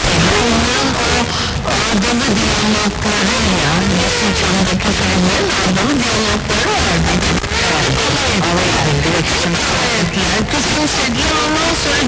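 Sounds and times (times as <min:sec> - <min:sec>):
faint radio talk: 0:00.0 - 0:12.0
radio static hiss: 0:00.0 - 0:12.0.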